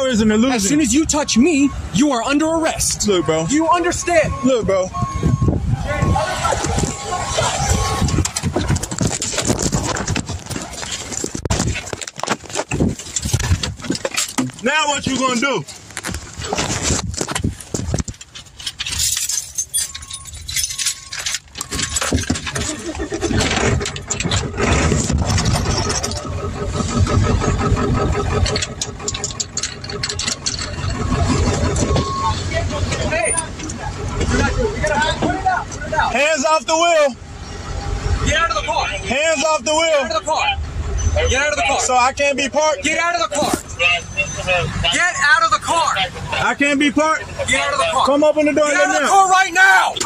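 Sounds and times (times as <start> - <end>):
car engine starting and running: 0.0 - 50.0.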